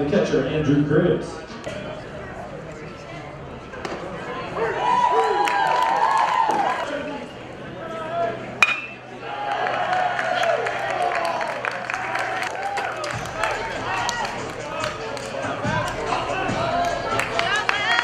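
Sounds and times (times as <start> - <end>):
spectators talking and calling out: 0.0 - 18.0
metal bat hitting ball: 8.6 - 9.0.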